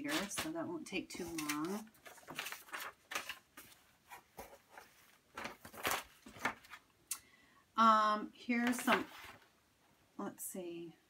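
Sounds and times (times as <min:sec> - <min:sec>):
plastic sleeves rustling and crinkling: 0:00.0 - 0:06.9, 0:08.6 - 0:09.6.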